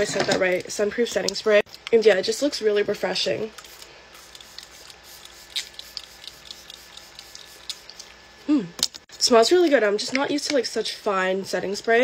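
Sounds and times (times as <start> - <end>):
spray bottle hissing: 3.6 - 7.9.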